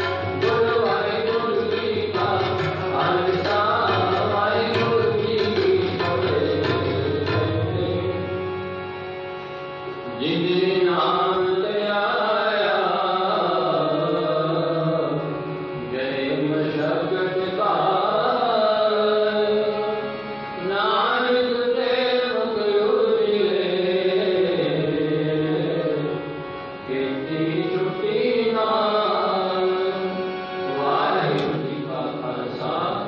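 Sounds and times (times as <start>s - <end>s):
person chanting devotional song: 0.0s - 33.0s.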